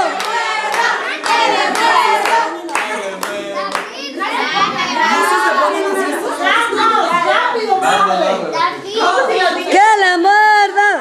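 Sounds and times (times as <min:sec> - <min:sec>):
group clapping in rhythm: 0:00.0 - 0:05.6
voices shouting together: 0:00.0 - 0:09.8
voices singing along: 0:00.0 - 0:11.0.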